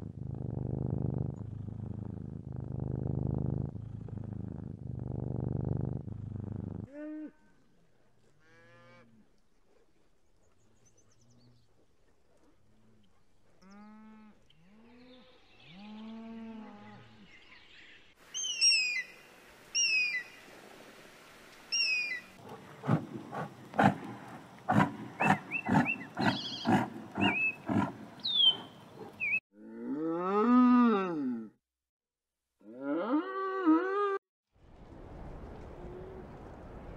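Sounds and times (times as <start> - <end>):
rough bird calls with chirps: 17.2 - 19.2, 21.7 - 22.4, 24.0 - 29.4
cattle mooing: 23.4 - 31.4
bird of prey screaming: 25.2 - 29.4
cow long loud moo: 29.5 - 31.6, 32.6 - 34.2.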